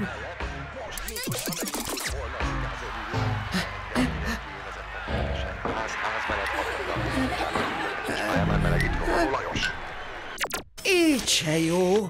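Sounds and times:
background music: 0:00.0 - 0:10.4.

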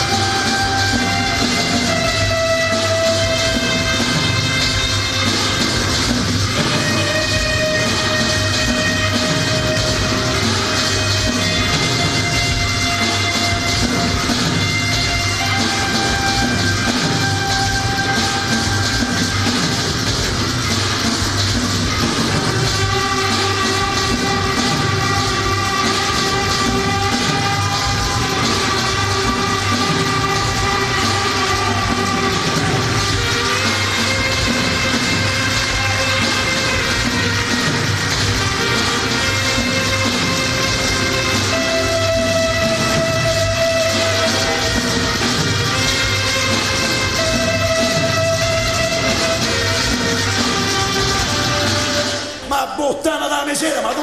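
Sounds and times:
live band music: 0:00.0 - 0:54.0.

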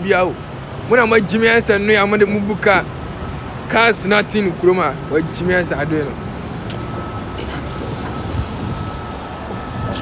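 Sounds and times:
low rumble of passing traffic: 0:00.0 - 0:10.0.

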